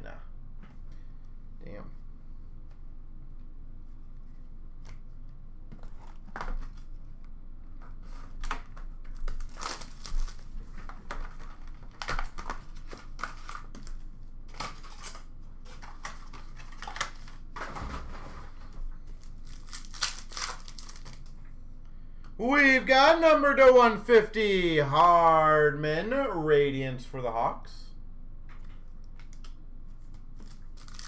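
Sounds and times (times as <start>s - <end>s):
card pack wrappers crinkling and tearing: 8.4s - 17.4s, 19.0s - 21.4s, 30.4s - 31.0s.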